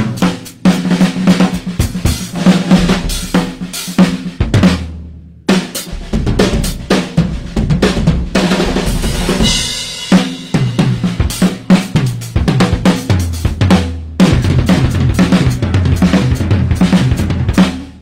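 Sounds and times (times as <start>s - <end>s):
rock drum kits playing: 0.0s - 18.0s.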